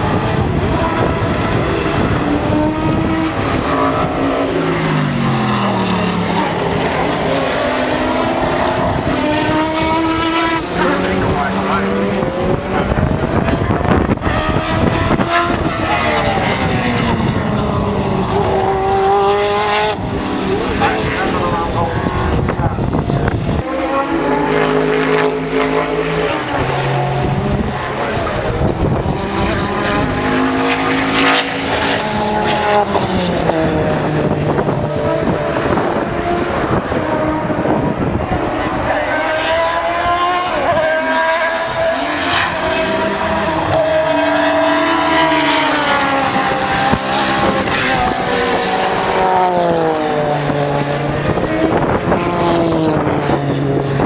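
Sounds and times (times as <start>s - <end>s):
race cars passing at speed: 0.0s - 54.0s.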